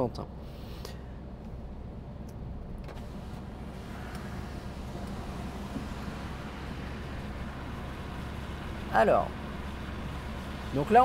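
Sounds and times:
car engine and tyre noise from cabin: 0.0s - 11.0s.

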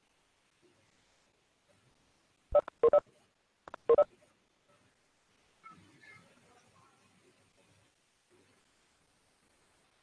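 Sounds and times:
short electronic beeps: 2.6s - 3.0s, 3.9s - 4.1s.

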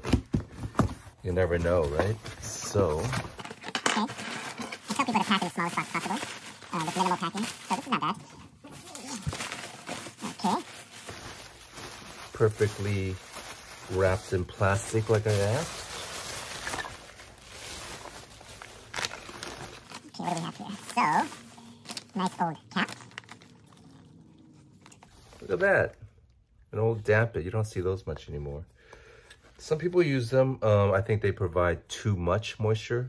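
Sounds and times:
plastic and bubble wrap crinkling: 0.0s - 26.1s.

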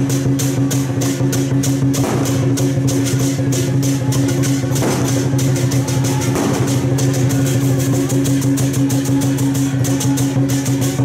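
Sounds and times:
rapid cymbal clashes: 0.0s - 11.0s
steady low drone: 0.0s - 11.0s.

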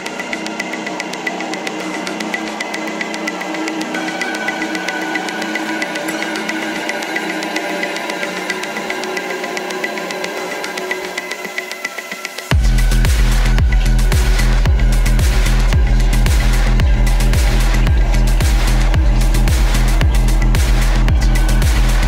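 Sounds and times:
dark electronic dance music: 0.0s - 22.0s.

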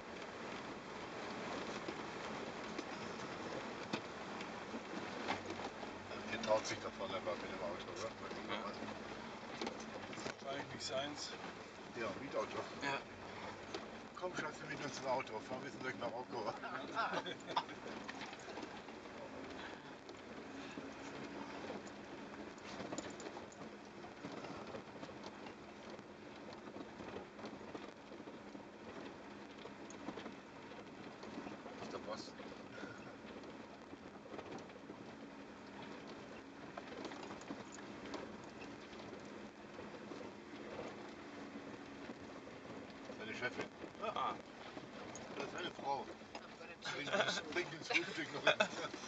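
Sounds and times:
vehicle engine hum: 0.0s - 49.0s.

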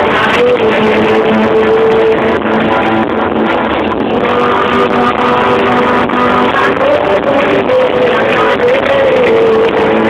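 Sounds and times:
rock band playing live: 0.0s - 10.0s.

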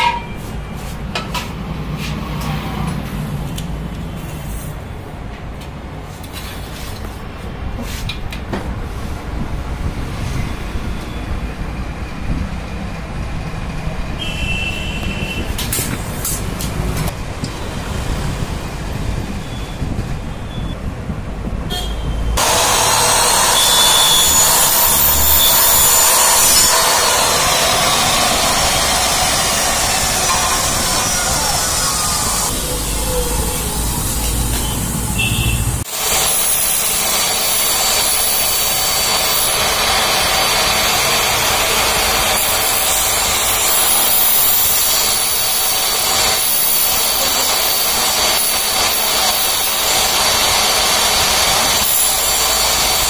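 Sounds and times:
chop saw cutting metal: 22.4s - 33.0s, 35.9s - 53.0s.

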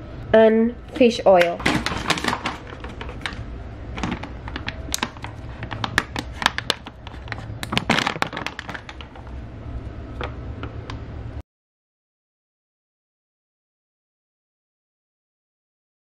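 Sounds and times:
paper bag and foil pouch rustling: 1.0s - 9.4s.

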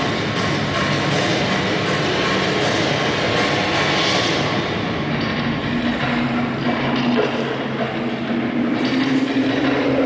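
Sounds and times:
loud mechanical-sounding soundtrack: 0.0s - 10.0s.

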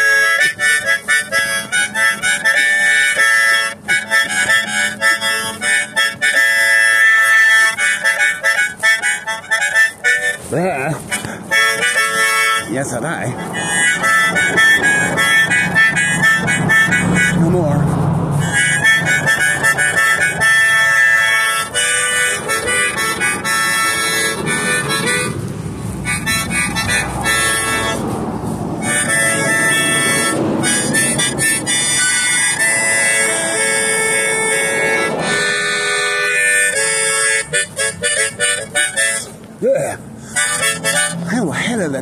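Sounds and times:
harmonica playing chords: 0.0s - 42.0s.

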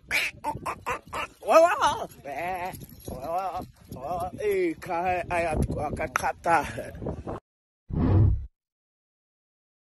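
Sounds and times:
man making wobbling vocal sounds: 0.0s - 3.7s.

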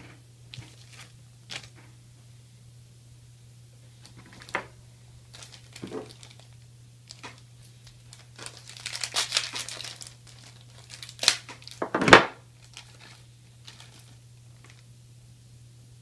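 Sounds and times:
plastic bag crinkling: 0.5s - 1.8s, 4.0s - 14.9s.

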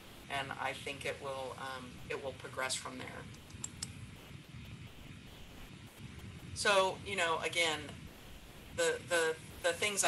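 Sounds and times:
low room noise: 0.0s - 10.0s
light computer clicks: 3.3s - 4.0s.

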